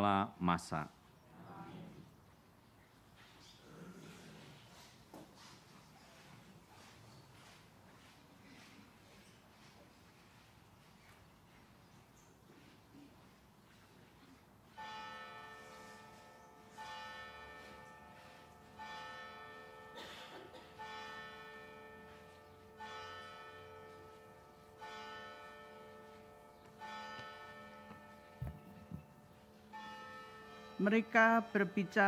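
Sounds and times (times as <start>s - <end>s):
church bell tolling: 14.7s - 32.0s.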